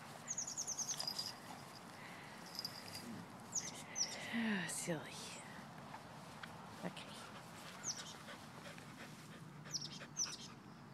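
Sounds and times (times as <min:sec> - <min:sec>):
dog panting softly: 0:07.1 - 0:10.6.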